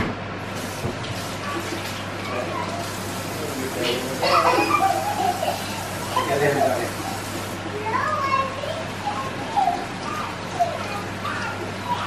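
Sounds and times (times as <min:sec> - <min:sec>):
young child vocalizing playfully: 0:07.8 - 0:12.0.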